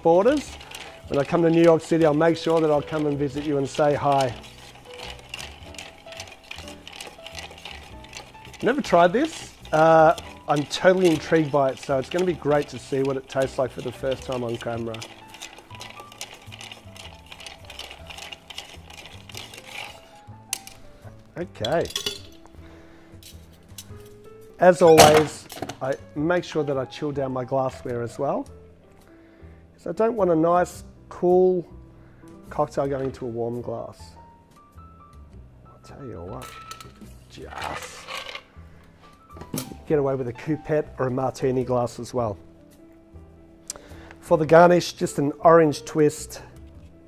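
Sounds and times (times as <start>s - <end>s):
ice clinking in metal tin: 0.0s - 20.9s, 21.6s - 22.4s, 24.8s - 25.9s, 36.4s - 38.5s
soft background music: 0.0s - 47.0s.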